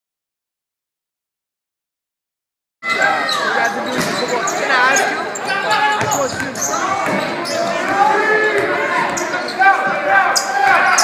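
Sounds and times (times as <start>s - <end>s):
people shouting in a hall: 2.8s - 11.0s.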